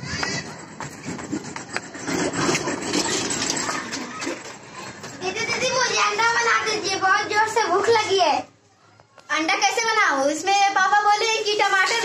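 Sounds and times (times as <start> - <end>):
footsteps on concrete: 0.0 - 4.2.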